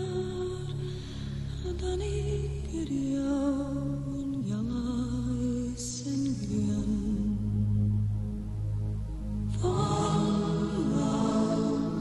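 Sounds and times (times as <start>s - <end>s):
low drone music: 0.0s - 12.0s.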